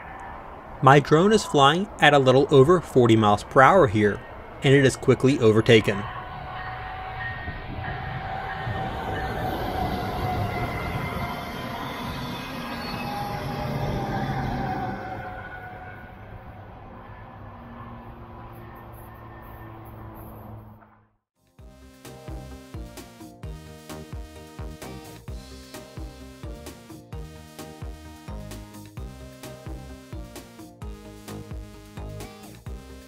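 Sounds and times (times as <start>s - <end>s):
passenger train passing at speed: 0.0s - 20.7s.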